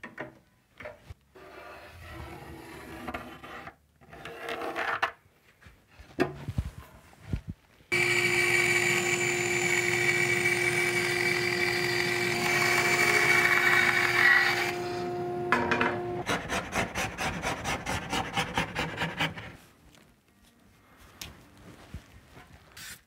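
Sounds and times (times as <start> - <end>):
motor hum: 7.9 - 16.2
bandsaw cutting plywood: 7.9 - 19.4.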